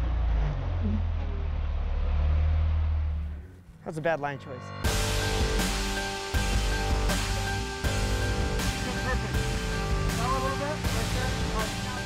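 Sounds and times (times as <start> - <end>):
engine running low: 0.0 - 3.8, 4.8 - 12.0
man's voice: 8.7 - 9.5, 10.1 - 12.0.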